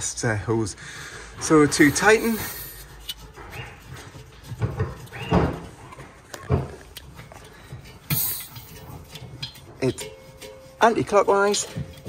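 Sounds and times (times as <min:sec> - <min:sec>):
hose fitting knocking and rubbing: 0:01.4 - 0:12.0
squeaks: 0:01.4 - 0:12.0
short gas hiss: 0:02.0 - 0:03.0, 0:08.1 - 0:08.7.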